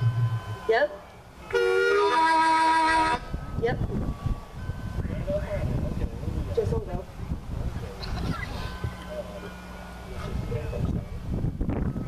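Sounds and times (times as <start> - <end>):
loud horn blast: 1.4 - 3.4.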